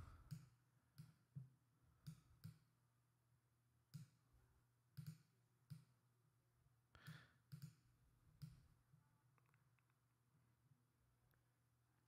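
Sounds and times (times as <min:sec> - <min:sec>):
computer mouse clicks: 0:02.0 - 0:02.7, 0:05.0 - 0:05.9, 0:07.0 - 0:07.8.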